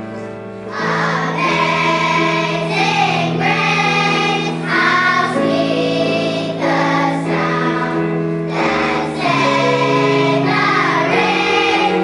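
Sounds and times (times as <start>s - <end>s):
sustained keyboard accompaniment: 0.0s - 12.0s
children's choir singing: 0.7s - 12.0s.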